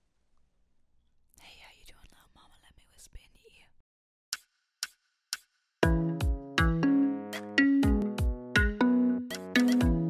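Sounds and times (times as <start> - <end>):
woman whispering: 1.4 - 3.8.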